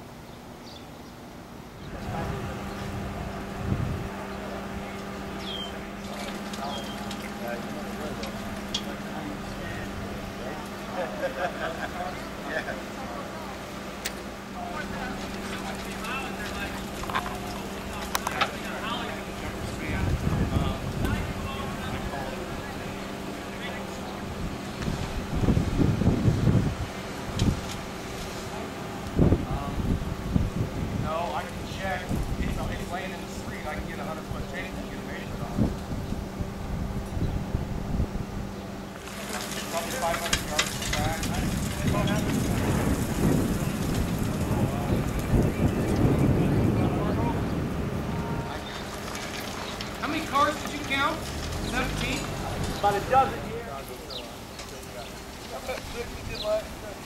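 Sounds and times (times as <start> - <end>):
steady low hum: 0.0 - 57.0
faint distant voices: 1.7 - 57.0
wind on microphone: 1.8 - 5.8, 19.2 - 23.1, 24.0 - 28.4, 29.0 - 38.7, 40.3 - 49.8
people talking indistinctly: 1.9 - 37.0, 39.0 - 57.0.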